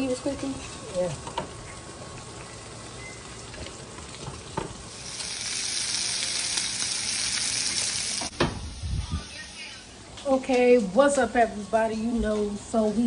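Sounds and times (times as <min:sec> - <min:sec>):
bacon sizzling in a frying pan: 0:00.0 - 0:08.8.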